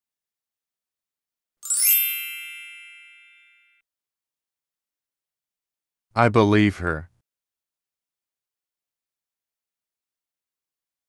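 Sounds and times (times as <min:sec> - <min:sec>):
bright chime: 0:01.6 - 0:03.8.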